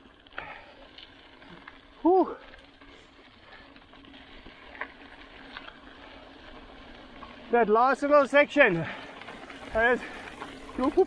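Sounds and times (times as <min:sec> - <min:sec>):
mountain bike rolling on dirt: 0:00.0 - 0:11.0.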